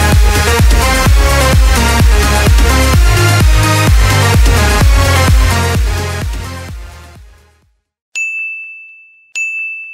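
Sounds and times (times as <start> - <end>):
electronic dance track: 0.0 - 7.5
high bright ding: 8.2 - 9.9.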